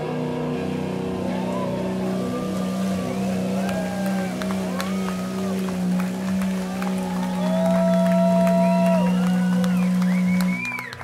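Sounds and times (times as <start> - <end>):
audience whistling: 6.9 - 11.0.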